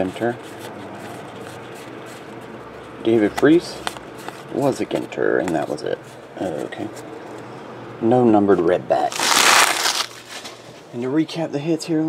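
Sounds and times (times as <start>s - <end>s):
foil wrappers crinkling: 9.0s - 10.6s.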